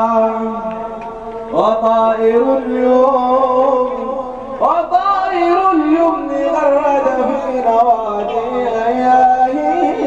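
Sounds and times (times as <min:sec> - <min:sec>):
man singing long notes: 0:00.0 - 0:10.0.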